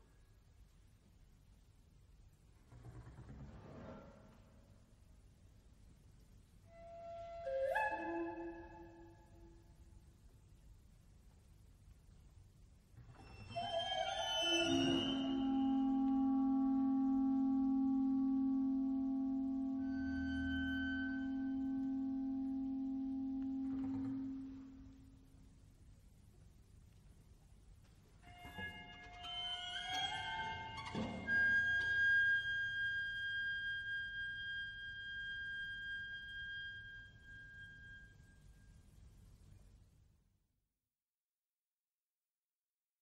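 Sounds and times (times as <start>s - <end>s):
orchestra holding a long note: 14.5s - 24.8s.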